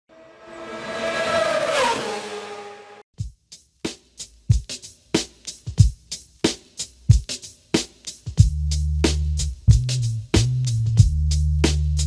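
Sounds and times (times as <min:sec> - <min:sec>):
racing engine passing by: 0:00.1 - 0:03.0.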